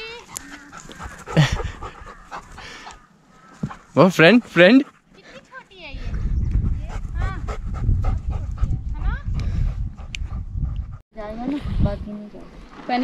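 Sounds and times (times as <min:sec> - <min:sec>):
dog panting: 0:00.0 - 0:03.0, 0:03.6 - 0:05.7, 0:06.6 - 0:11.0.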